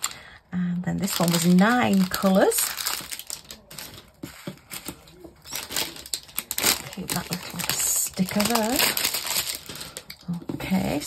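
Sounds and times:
plastic bags crinkling: 0:00.0 - 0:00.3, 0:01.0 - 0:11.0.

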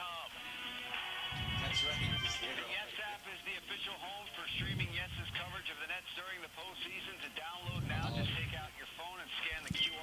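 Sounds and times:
indistinct voices talking: 0:01.4 - 0:08.8.

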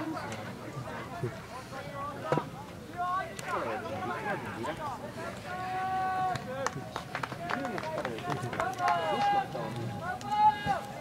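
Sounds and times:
people shouting: 0:08.7 - 0:11.0.

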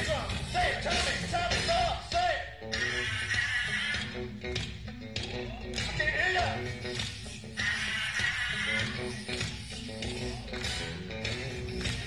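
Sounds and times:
live funk band playing: 0:00.0 - 0:12.0.

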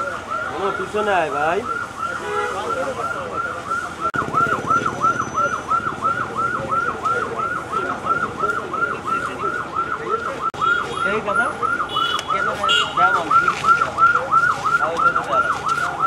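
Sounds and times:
electronic siren yelping: 0:00.0 - 0:16.0.

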